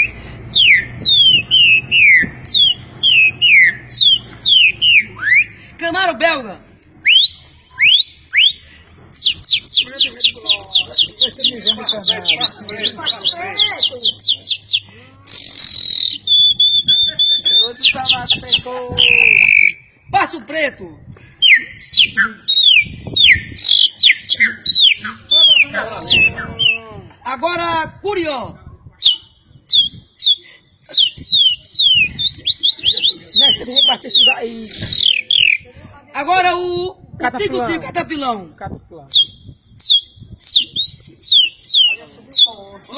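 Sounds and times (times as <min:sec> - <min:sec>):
man whistling birdsong: 0:00.0 - 0:05.6, 0:07.0 - 0:08.6, 0:13.9 - 0:19.9, 0:21.4 - 0:26.8
voices: 0:00.9 - 0:39.6, 0:40.6 - 0:42.9.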